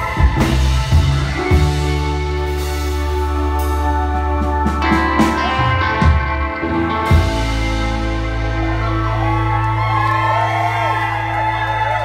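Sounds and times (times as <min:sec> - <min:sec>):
sliding wavering guitar pitches: 0:00.0 - 0:11.8
rock band sustained droning chord: 0:00.0 - 0:12.0.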